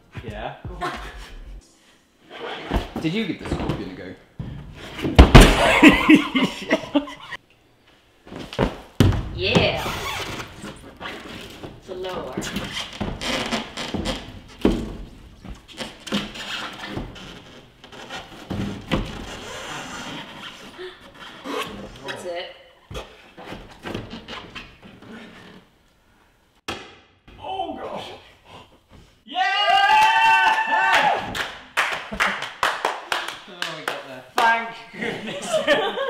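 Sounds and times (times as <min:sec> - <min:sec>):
knocks and thuds on climbing wall: 0:08.6 - 0:09.8.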